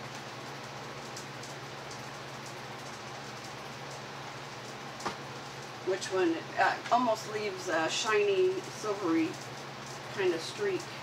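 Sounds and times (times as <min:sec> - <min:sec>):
air conditioner running: 0:00.0 - 0:11.0
electric fans whooshing: 0:00.0 - 0:11.0.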